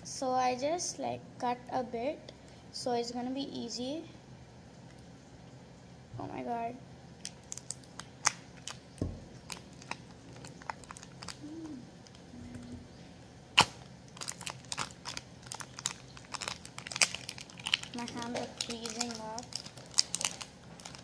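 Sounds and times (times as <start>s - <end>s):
plastic packet crinkling and tearing: 7.2s - 12.7s, 13.6s - 21.0s.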